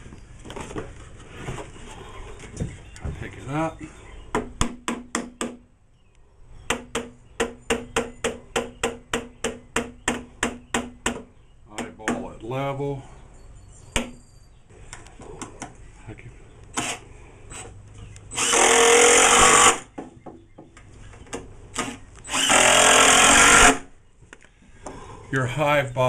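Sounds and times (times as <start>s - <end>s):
cordless drill driving screws: 18.3s - 19.9s, 21.8s - 23.9s.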